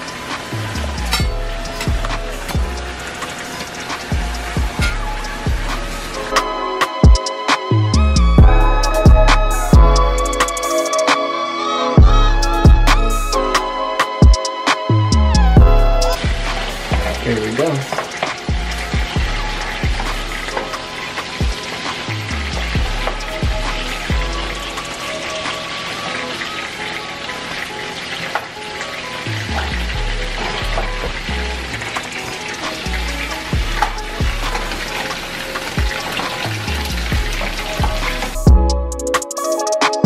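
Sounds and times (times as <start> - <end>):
food sizzling in a pan: 0.0 - 7.8, 15.7 - 38.5
music with deep bass beat: 0.0 - 11.2, 12.0 - 25.6, 29.3 - 40.0.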